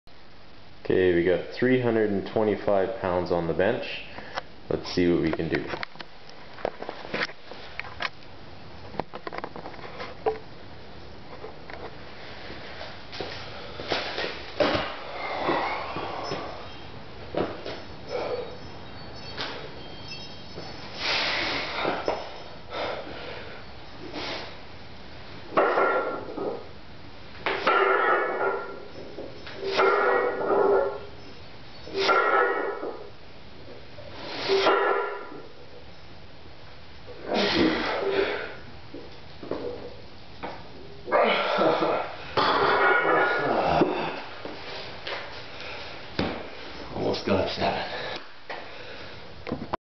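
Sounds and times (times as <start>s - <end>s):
man breathing forcefully: 20.9s - 24.6s
man grunting with effort: 41.1s - 44.3s.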